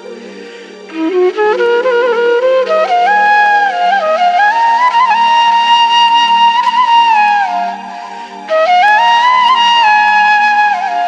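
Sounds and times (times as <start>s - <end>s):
slow sad flute melody: 0.0s - 11.0s.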